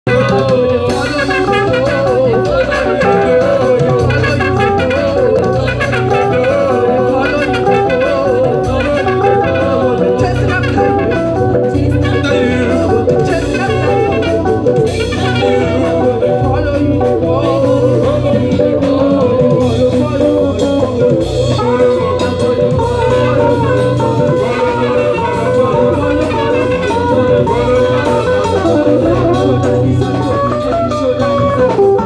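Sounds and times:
electric bass: 0.0 - 32.0
electric guitar: 0.0 - 32.0
keyboards playing: 0.0 - 32.0
person singing: 0.1 - 32.0.

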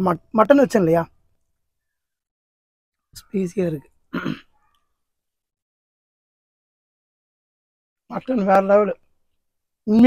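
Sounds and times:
man clearing his throat: 4.2 - 4.5.

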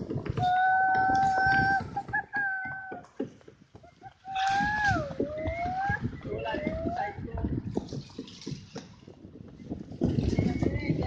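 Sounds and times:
person's high-pitched calls: 0.4 - 3.0.

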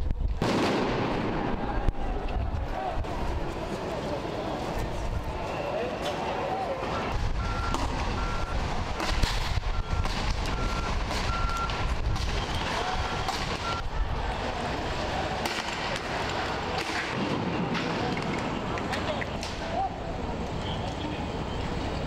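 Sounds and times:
low outdoor rumble: 0.0 - 22.0
sharp bangs: 0.4 - 1.9, 7.1 - 13.8.

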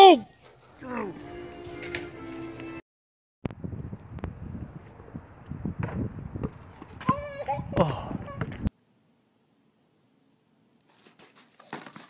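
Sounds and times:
child calling out: 7.0 - 8.4.

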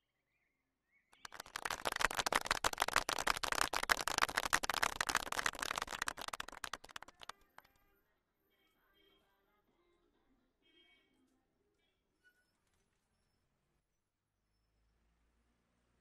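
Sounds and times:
crowd applauding: 1.2 - 7.7.

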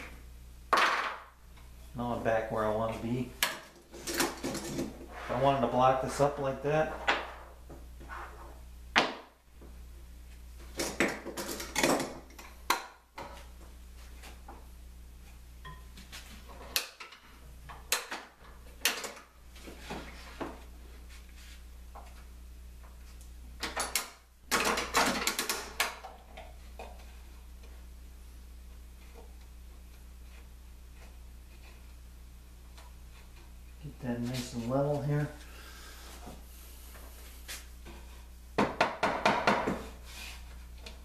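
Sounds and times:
steady low hum: 0.0 - 41.0
wooden blocks and clamps clattering: 10.7 - 13.4, 23.6 - 27.0.

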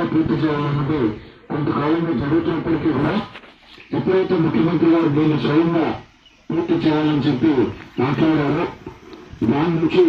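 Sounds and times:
man speaking into a microphone: 0.0 - 10.0.

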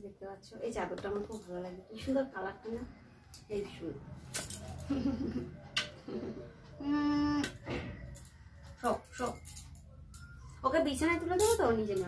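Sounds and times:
woman murmuring: 4.9 - 7.6.

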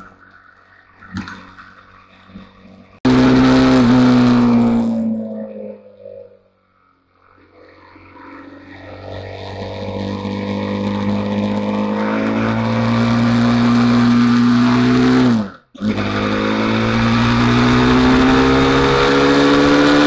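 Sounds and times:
motorcycle engine accelerating: 3.0 - 6.5, 7.3 - 20.0.

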